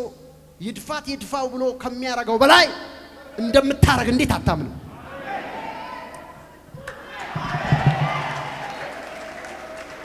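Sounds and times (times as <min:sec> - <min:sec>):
congregation applauding: 0:06.8 - 0:10.0.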